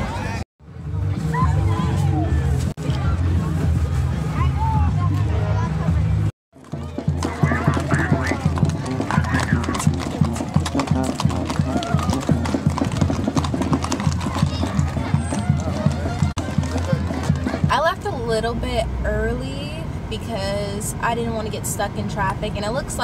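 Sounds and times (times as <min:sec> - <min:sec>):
people talking: 0:00.0 - 0:10.3, 0:13.9 - 0:23.0
hooves clip-clopping on asphalt: 0:06.6 - 0:18.6.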